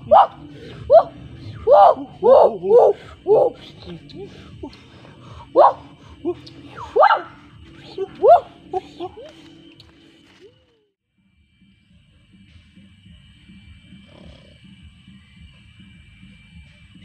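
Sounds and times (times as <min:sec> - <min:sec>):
rising yelping calls: 0:00.0 - 0:10.0.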